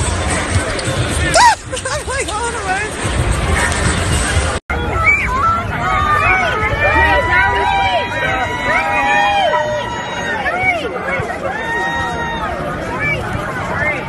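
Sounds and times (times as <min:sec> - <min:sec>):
crowd calling out: 0:04.7 - 0:14.0.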